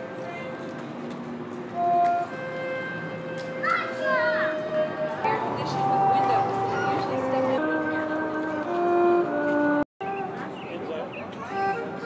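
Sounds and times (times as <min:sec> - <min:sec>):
music with long held notes: 0:00.0 - 0:12.0
child calling out: 0:03.6 - 0:04.6.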